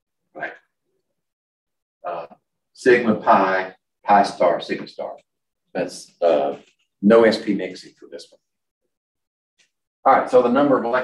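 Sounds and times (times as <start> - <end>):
man speaking: 0.3 - 0.7, 2.0 - 8.4, 10.0 - 11.0.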